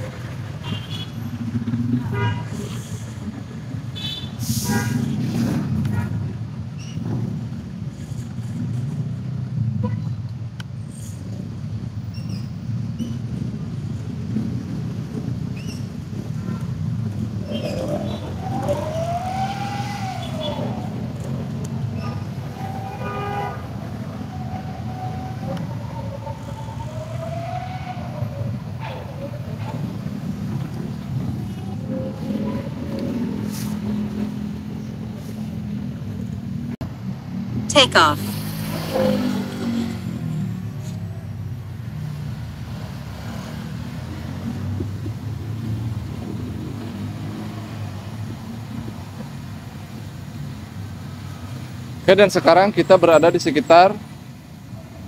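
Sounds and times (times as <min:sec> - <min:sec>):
low rumble of traffic engines: 0:00.0 - 0:55.0.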